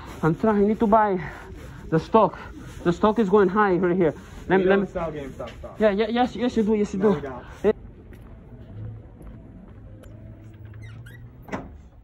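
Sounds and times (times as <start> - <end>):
glass door squeaking open: 10.6 - 12.0
door clunk: 11.4 - 12.0.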